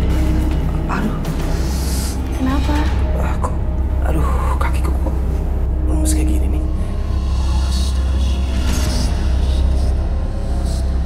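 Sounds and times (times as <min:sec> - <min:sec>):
deep rumbling drone: 0:00.0 - 0:11.0.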